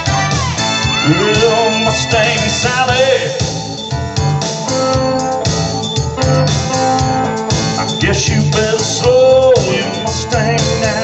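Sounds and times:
bass guitar: 0:00.0 - 0:11.0
drums: 0:00.0 - 0:11.0
electric guitar: 0:00.0 - 0:11.0
organ keyboard chords: 0:00.0 - 0:11.0.

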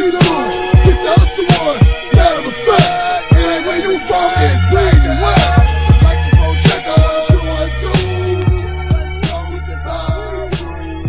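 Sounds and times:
heavy bass line: 0:00.0 - 0:11.0
hip hop drum beat: 0:00.0 - 0:11.0.

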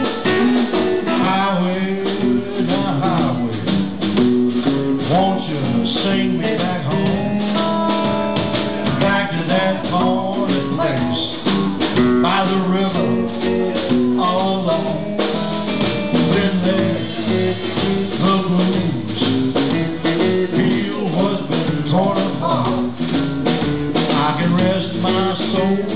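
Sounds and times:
guitar lines with bent notes: 0:00.0 - 0:25.9
live blues band: 0:00.0 - 0:25.9.

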